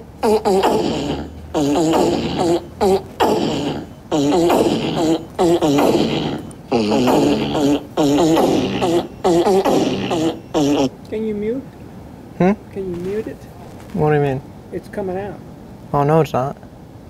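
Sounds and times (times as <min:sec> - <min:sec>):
fart sound effects: 0:00.2 - 0:10.9, 0:12.9 - 0:14.2.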